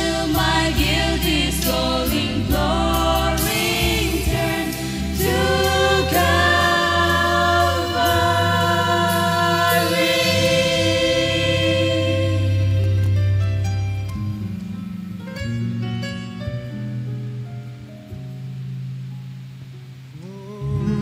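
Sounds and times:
group singing: 0:00.0 - 0:13.1
low accompaniment: 0:00.0 - 0:21.0.

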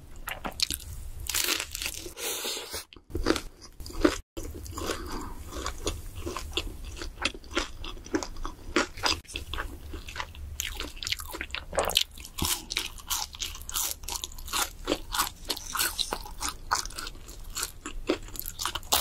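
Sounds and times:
person chewing crispy food: 0:00.2 - 0:19.0.

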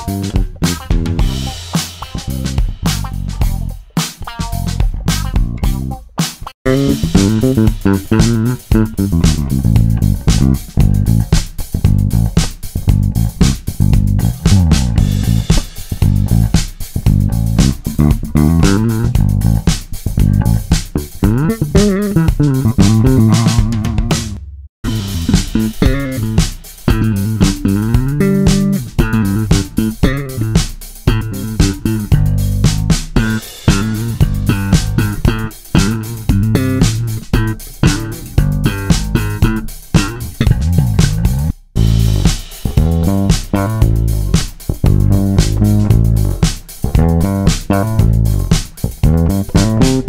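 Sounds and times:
electric bass plucked fingerstyle: 0:00.0 - 0:50.0.

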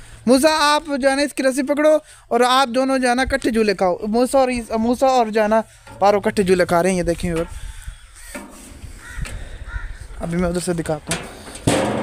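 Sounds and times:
low outdoor rumble: 0:00.0 - 0:12.0
caw-like animal calls: 0:07.4 - 0:10.2.

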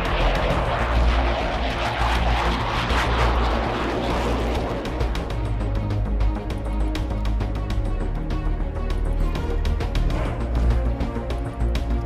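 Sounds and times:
jet aircraft rushing: 0:00.0 - 0:12.0
music with low bass line: 0:00.0 - 0:12.0.

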